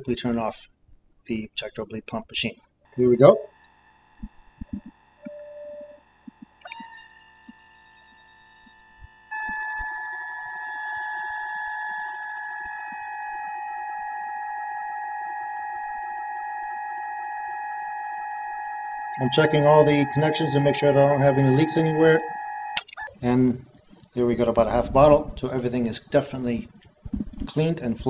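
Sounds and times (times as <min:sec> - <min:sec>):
electric pump whining: 0:02.9 - 0:28.0
click: 0:22.7 - 0:23.1.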